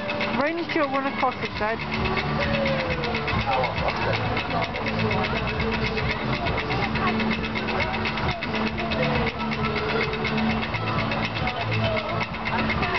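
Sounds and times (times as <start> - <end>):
chain lift clicking: 0.0 - 12.9
motor hum: 0.0 - 12.9
people talking: 0.0 - 12.9.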